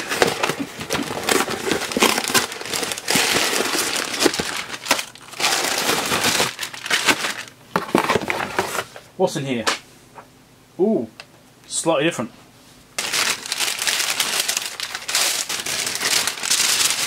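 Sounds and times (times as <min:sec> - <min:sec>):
paper and cardboard rustling: 0:00.0 - 0:09.0, 0:13.0 - 0:17.0.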